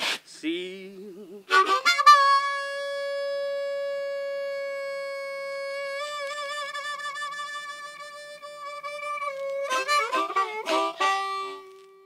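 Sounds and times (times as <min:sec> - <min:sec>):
harmonica long note: 0:01.5 - 0:12.0.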